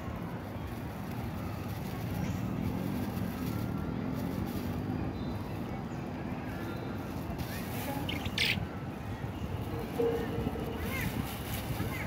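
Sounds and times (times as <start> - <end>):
passing motor vehicle rumble: 1.0 - 12.0
faint bird chirps: 7.8 - 8.8.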